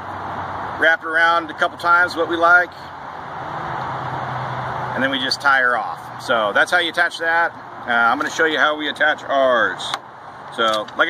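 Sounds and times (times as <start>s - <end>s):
noisy rush: 0.0s - 11.0s.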